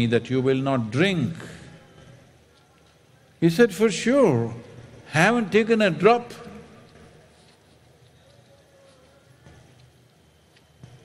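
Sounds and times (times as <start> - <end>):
faint venue hiss: 0.0 - 11.0.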